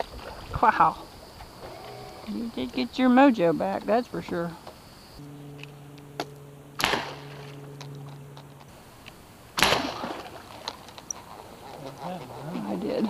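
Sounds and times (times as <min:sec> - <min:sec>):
steady low hum: 0:00.0 - 0:13.0
bow shot snaps: 0:05.6 - 0:08.1, 0:09.0 - 0:10.3.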